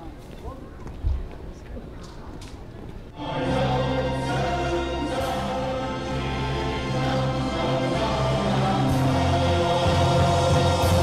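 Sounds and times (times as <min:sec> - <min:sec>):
choir singing: 0:03.2 - 0:11.0
instrumental accompaniment: 0:03.2 - 0:11.0.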